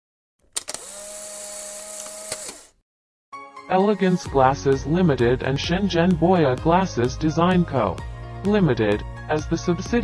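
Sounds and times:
small electric motor whirring: 0:00.6 - 0:02.8.

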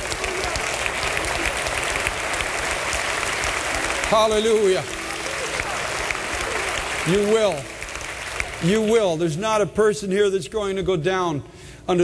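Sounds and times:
people clapping: 0:00.0 - 0:09.4.

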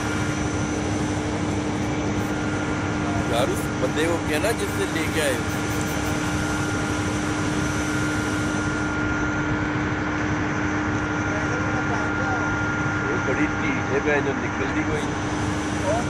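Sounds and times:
high machine whine: 0:00.0 - 0:16.0
machinery low hum: 0:00.0 - 0:16.0.

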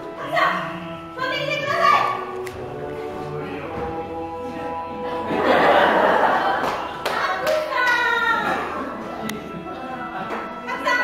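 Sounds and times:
music: 0:00.0 - 0:11.0
audience applauding: 0:06.4 - 0:08.1.

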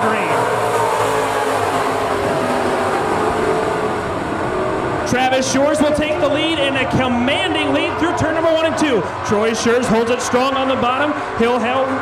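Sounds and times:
race car engines at full throttle: 0:00.0 - 0:12.0.

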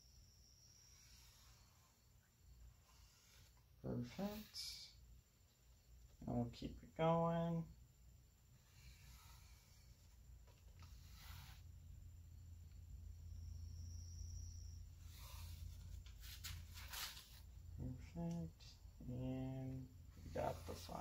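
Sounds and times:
low steady hum: 0:00.0 - 0:21.0
pen scratching on wood: 0:01.0 - 0:02.0, 0:02.6 - 0:04.7, 0:08.6 - 0:11.7, 0:15.1 - 0:16.4.

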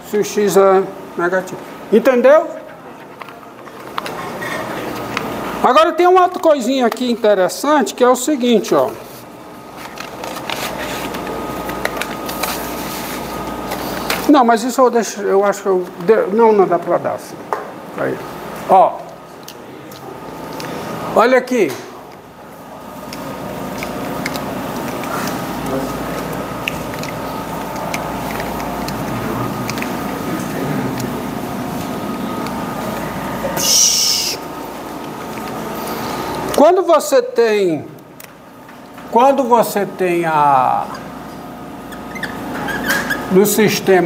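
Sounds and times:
high-pitched squeak: 0:42.0 - 0:43.3.

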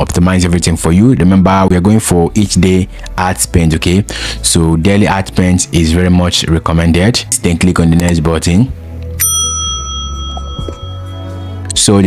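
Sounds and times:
soft background music: 0:00.0 - 0:12.0
bright bell ding: 0:09.2 - 0:11.6.

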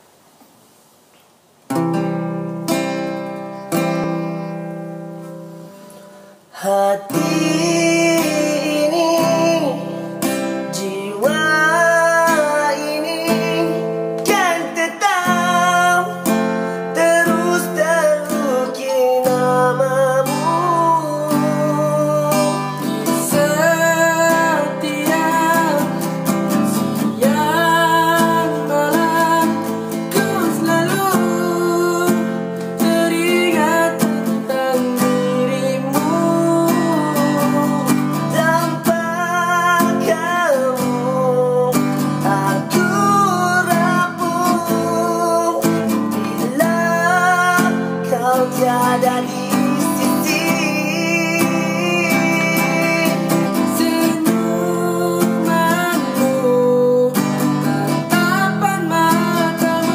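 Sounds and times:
strummed acoustic guitar: 0:01.7 - 0:59.9
man singing slow melody: 0:06.4 - 0:59.9.

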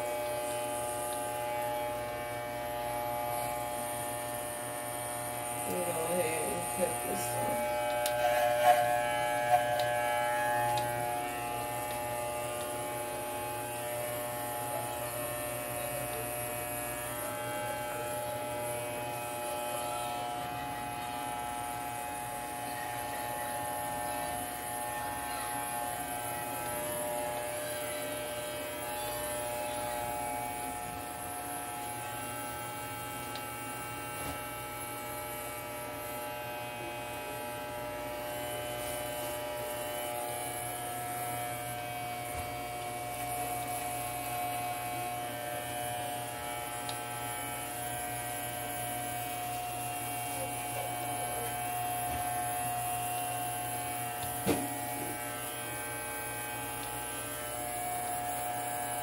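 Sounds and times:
hair clippers buzzing: 0:00.0 - 0:59.0.

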